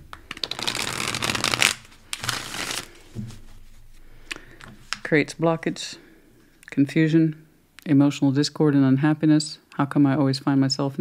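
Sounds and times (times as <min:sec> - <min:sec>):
cards being shuffled: 0:00.0 - 0:03.6.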